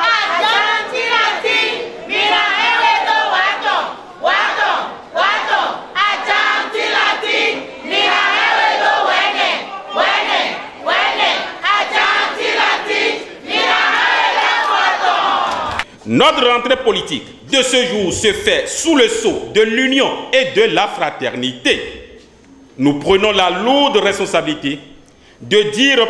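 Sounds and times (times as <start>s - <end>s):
crowd of women chanting: 0.0s - 15.8s.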